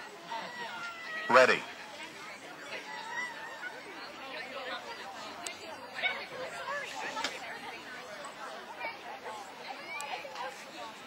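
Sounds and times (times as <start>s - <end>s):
people chatting in background: 0.0s - 11.0s.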